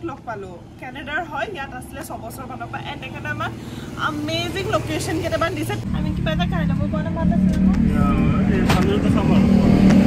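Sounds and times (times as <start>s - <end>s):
woman talking: 0.0s - 7.9s.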